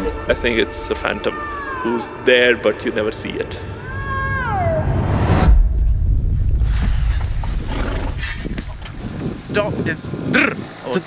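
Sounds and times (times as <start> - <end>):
deep rumble: 3.1 - 9.4.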